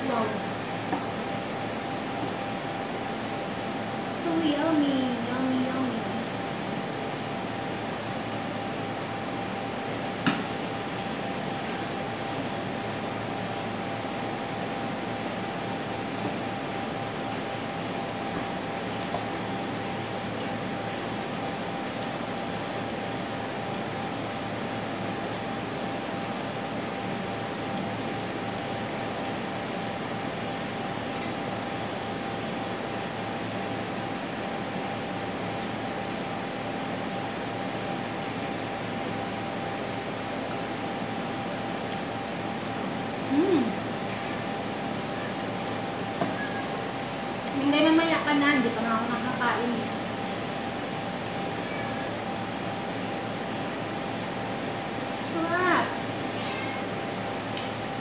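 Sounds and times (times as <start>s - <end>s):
mechanical hum and hiss: 0.0s - 58.0s.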